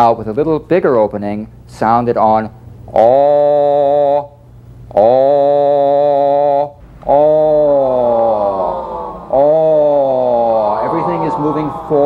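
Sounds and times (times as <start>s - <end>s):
man intoning a low vowel: 2.9s - 12.0s.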